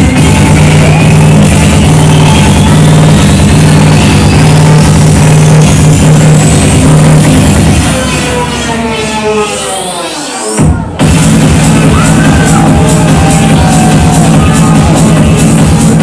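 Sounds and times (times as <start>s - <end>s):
loud trance music: 0.0s - 16.0s
rolling bassline: 0.0s - 16.0s.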